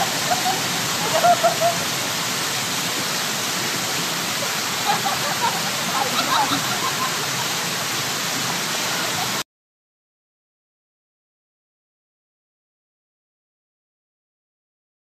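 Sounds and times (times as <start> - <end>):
fountain water splashing: 0.0 - 9.4.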